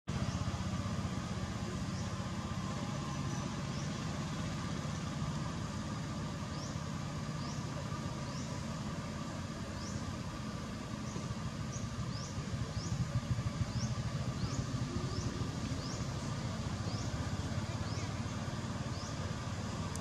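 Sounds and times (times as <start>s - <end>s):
engine running low rumble: 0.0s - 20.0s.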